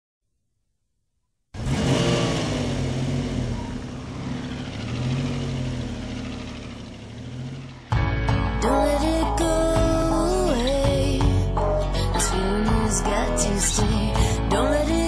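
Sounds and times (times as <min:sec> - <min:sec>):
car engine revving: 0:01.6 - 0:08.3.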